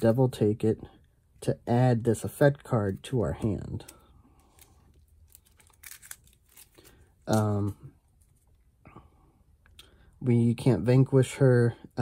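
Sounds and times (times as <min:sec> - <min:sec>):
playing cards rustling: 0:02.1 - 0:08.6.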